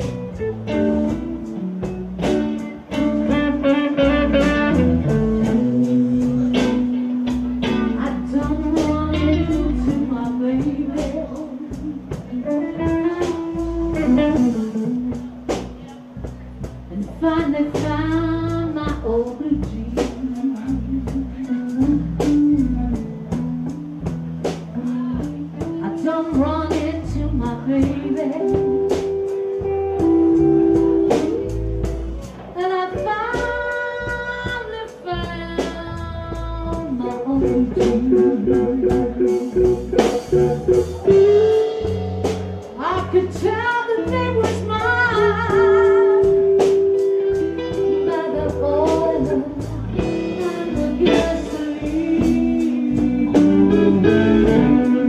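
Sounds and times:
electric guitar lick: 0.0 - 10.5, 37.2 - 42.8, 44.7 - 55.0
blues band playing: 0.0 - 55.0
woman singing: 3.2 - 15.3, 16.9 - 29.1, 32.4 - 39.6, 42.6 - 55.0.

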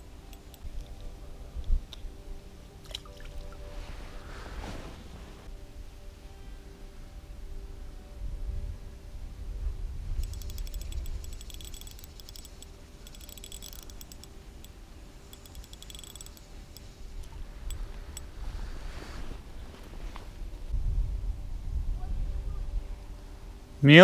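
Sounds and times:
soft rushing sound: 3.4 - 5.6
wind rumble on microphone: 7.0 - 14.1, 17.0 - 23.8
fishing reel clicking: 10.2 - 14.7, 15.3 - 18.3.

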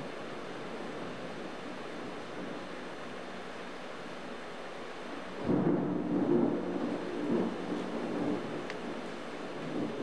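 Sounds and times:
steady rain falling: 0.0 - 10.0
thunder rumble: 5.4 - 10.0.

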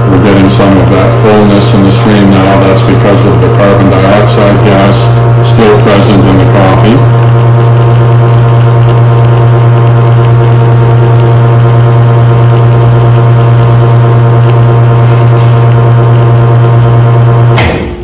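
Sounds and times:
espresso machine pump humming: 0.0 - 17.6.

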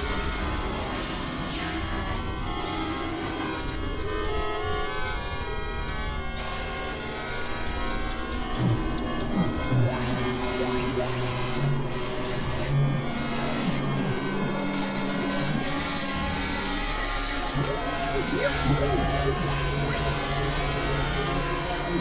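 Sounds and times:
synthesizer drone: 8.0 - 22.0.

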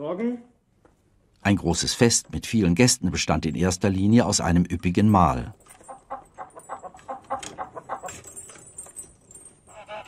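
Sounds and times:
chickens clucking: 5.8 - 8.4.

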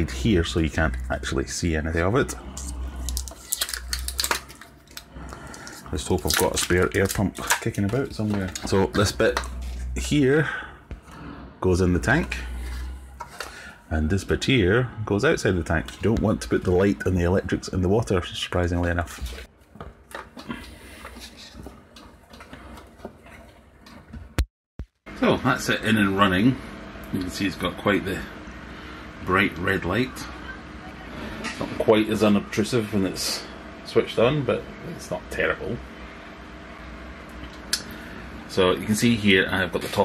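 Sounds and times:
plastic parts clicking and rattling: 3.1 - 5.1.

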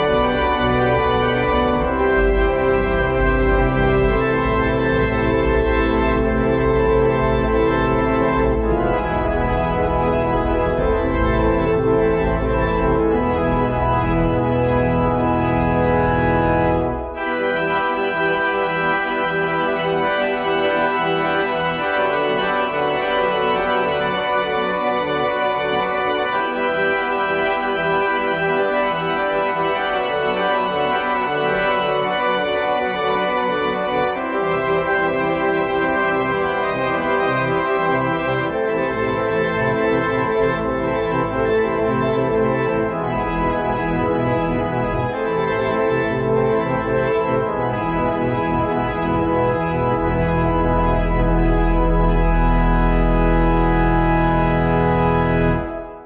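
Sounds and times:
electronic church organ: 0.0 - 56.0.

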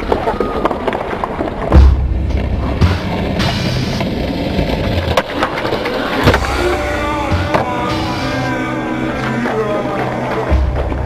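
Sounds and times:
skateboard clacks: 0.0 - 11.0
skateboard wheels rolling on concrete: 0.0 - 11.0.

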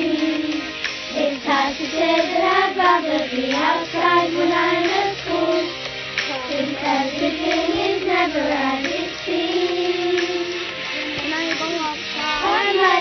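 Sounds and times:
child singing: 0.0 - 13.0
instrumental backing music: 0.0 - 13.0.

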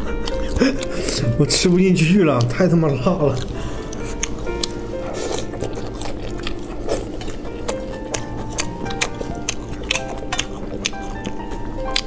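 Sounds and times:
background music with held notes: 0.0 - 12.0
person biting and chewing: 0.0 - 12.0.

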